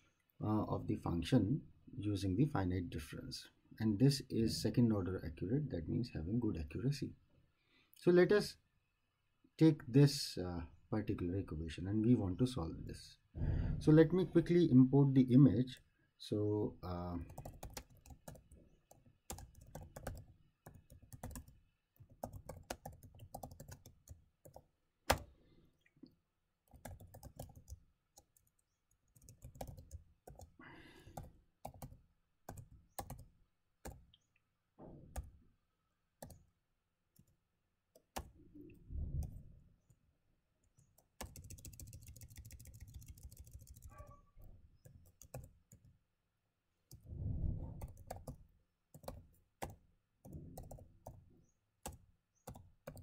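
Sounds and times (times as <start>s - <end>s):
keyboard typing: 17.3s - 25.3s, 26.7s - 30.6s, 31.2s - 34.1s, 38.0s - 38.4s, 41.0s - 44.2s, 44.8s - 45.9s, 47.8s - 51.2s, 51.8s - 53.0s.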